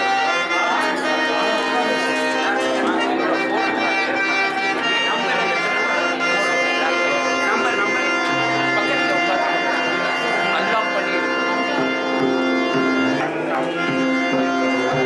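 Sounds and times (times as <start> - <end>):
harmonium chords: 0.0 - 15.0
tabla playing: 11.6 - 15.0.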